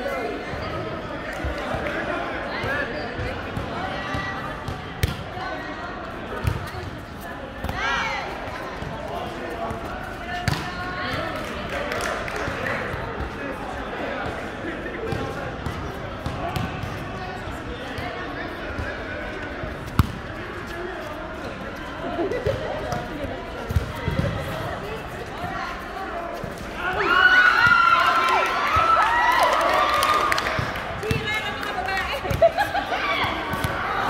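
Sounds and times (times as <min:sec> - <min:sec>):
players' voices and calls: 0:00.0 - 0:34.0
volleyball slaps: 0:10.4 - 0:11.5.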